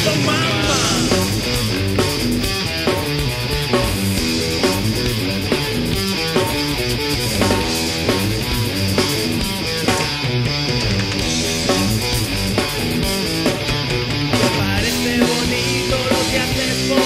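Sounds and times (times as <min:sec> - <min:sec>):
distorted electric guitar riff: 0:00.0 - 0:17.0
punk band playing: 0:00.0 - 0:17.0.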